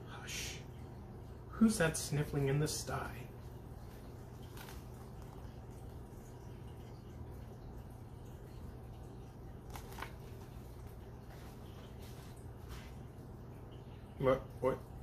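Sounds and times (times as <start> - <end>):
steady low hum: 0.0 - 15.0
book being handled clicks: 9.7 - 10.2.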